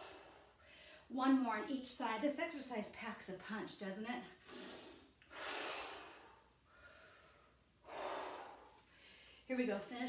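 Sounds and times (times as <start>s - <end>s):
woman breathing hard: 0.0s - 1.1s, 4.4s - 9.5s.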